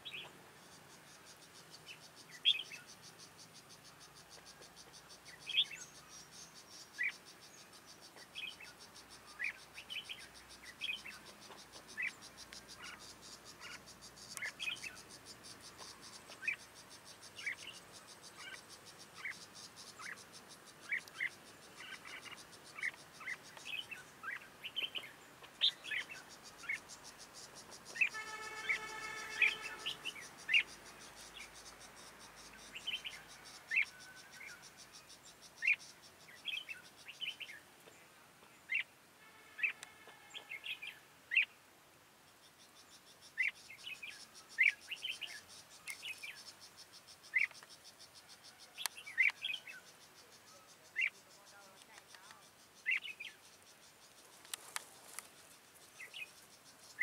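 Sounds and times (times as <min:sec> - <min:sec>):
buzzy bird calls: 0:00.0 - 0:03.1, 0:03.8 - 0:37.6, 0:38.7 - 0:41.5, 0:43.0 - 0:57.0
bulbuls calling: 0:00.0 - 0:38.0, 0:43.0 - 0:57.0
faint high insect buzz: 0:00.0 - 0:57.0.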